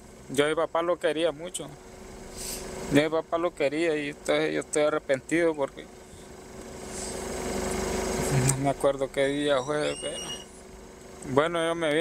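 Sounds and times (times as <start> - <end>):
small engine running: 5.8 - 12.0.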